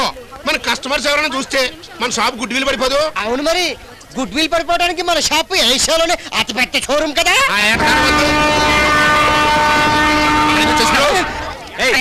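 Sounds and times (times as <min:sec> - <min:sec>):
locomotive air horn blast: 0:07.6 - 0:11.8
low engine rumble: 0:07.7 - 0:12.0.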